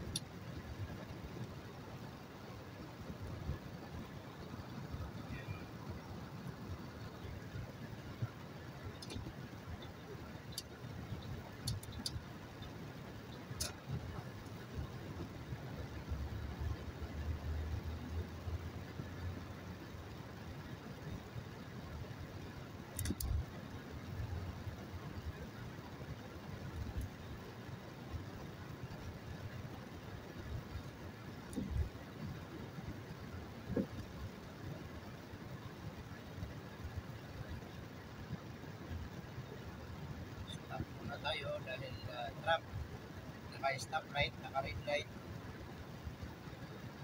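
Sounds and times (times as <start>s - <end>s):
car engine and road noise: 0.0s - 47.0s.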